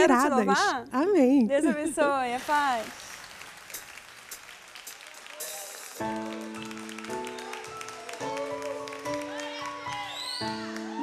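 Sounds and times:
light scattered clapping: 2.4 - 11.0.

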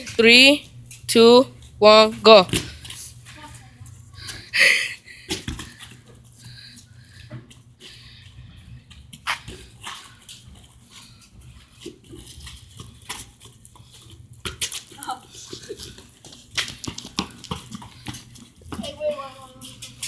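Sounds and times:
children's voices: 18.8 - 20.0.

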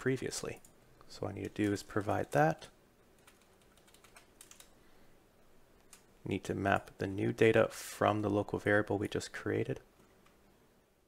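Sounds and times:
keyboard typing: 1.4 - 2.4, 3.1 - 4.8.

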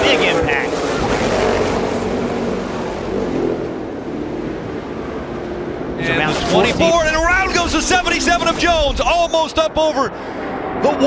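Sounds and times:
race car engines droning: 0.0 - 11.0
rushing track noise: 0.0 - 11.0.

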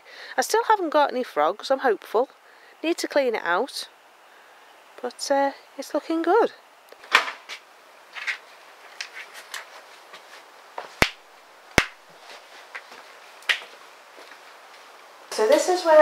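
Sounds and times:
knocks scrapes and rustles: 7.0 - 10.5.

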